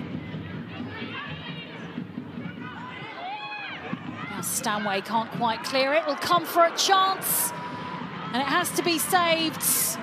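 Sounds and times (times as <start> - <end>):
stadium crowd murmuring: 0.0 - 10.0.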